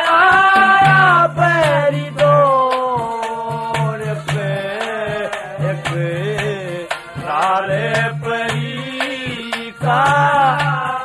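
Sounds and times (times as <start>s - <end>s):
drum strokes: 0.0s - 11.0s
person singing folk melody: 0.0s - 11.0s.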